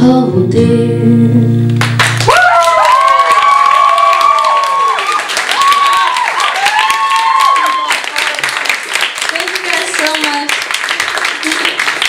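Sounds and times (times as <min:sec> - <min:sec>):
audience applauding: 0:01.8 - 0:12.0
people cheering with high whoops: 0:02.2 - 0:08.4.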